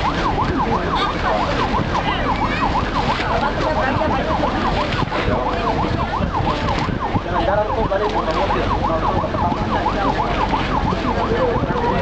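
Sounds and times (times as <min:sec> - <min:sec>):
warbling electronic siren tone: 0:00.0 - 0:12.0.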